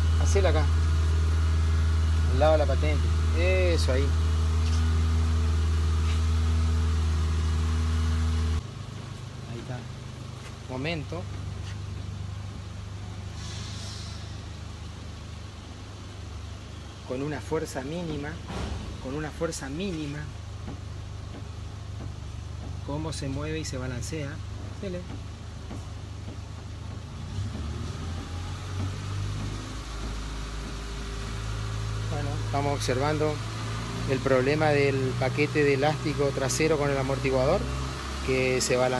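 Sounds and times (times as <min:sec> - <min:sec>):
low mechanical hum: 0:00.0 - 0:38.9
short high hiss: 0:13.2 - 0:14.9.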